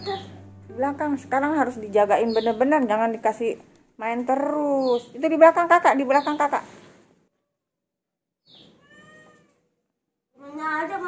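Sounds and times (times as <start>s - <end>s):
cat meowing: 8.7s - 9.8s.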